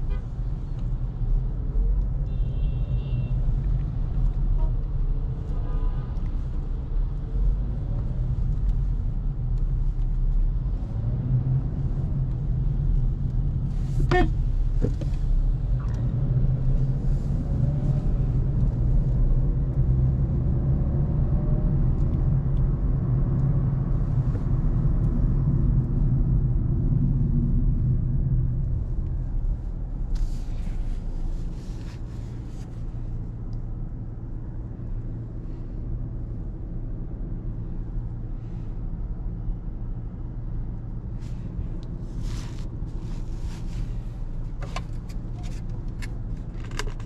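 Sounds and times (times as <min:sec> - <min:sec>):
car engine and road rumble: 0:00.0 - 0:47.0.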